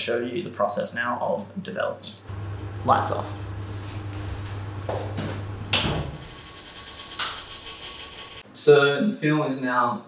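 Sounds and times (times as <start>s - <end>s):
low steady hum: 2.1s - 7.8s.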